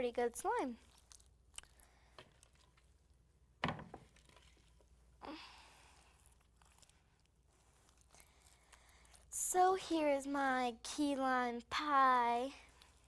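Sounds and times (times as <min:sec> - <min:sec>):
hands squeezing slime: 0:00.5 - 0:03.2, 0:04.0 - 0:10.2, 0:12.2 - 0:13.0.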